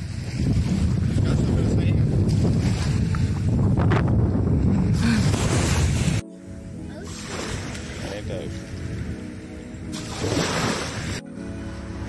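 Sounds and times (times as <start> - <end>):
wind buffeting microphone: 0.0 - 6.9
surf washing: 5.0 - 6.2, 7.0 - 12.0.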